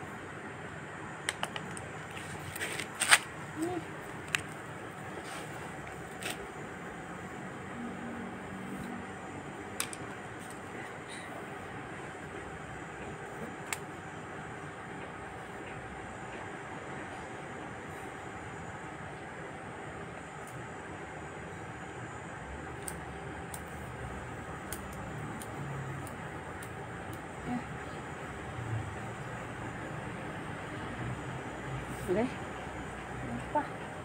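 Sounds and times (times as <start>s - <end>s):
faint constant hum: 0.0s - 34.0s.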